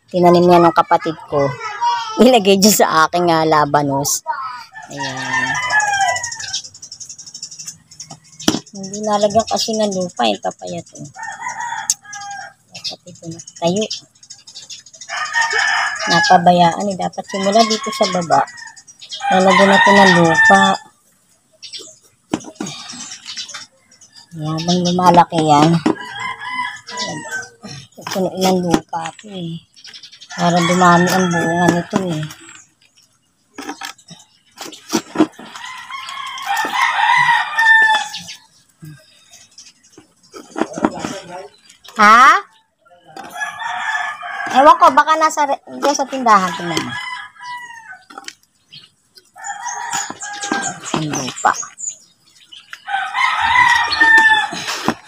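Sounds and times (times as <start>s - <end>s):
rooster crowing: 4.8s - 6.6s, 11.2s - 12.6s, 26.0s - 27.6s, 35.6s - 38.2s, 43.2s - 44.9s, 46.4s - 48.1s, 52.9s - 54.8s.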